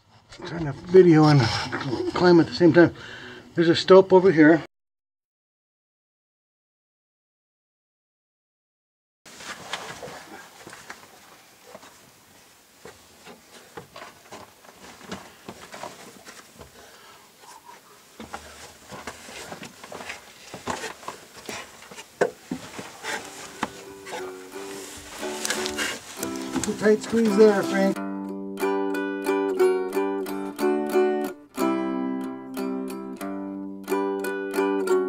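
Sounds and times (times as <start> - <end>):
climbing a wooden ladder: 9.3 - 12.1, 12.8 - 27.9
ukulele music: 23.0 - 35.0.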